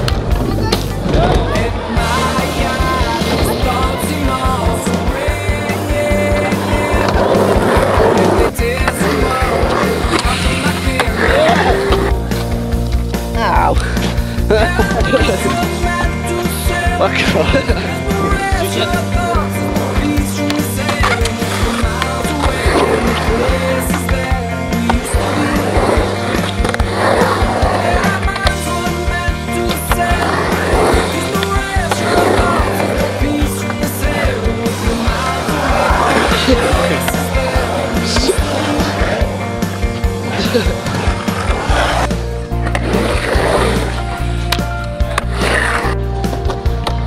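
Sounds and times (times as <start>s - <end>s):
skateboard wheels on concrete: 0.0s - 47.0s
loud music with steady beat: 1.4s - 46.1s.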